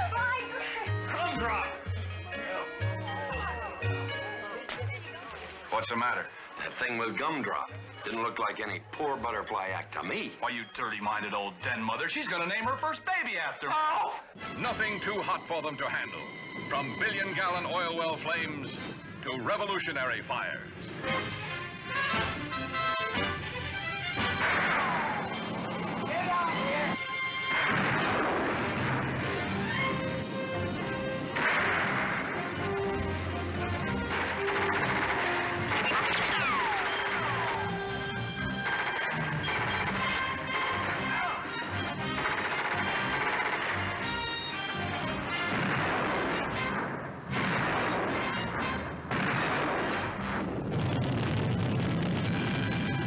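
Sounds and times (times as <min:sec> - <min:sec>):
film music: 0:00.0 - 0:13.6, 0:14.2 - 0:50.7, 0:52.0 - 0:53.0
loud explosions: 0:24.2 - 0:26.4, 0:27.5 - 0:53.0
roaring fire: 0:27.5 - 0:32.7, 0:45.4 - 0:53.0.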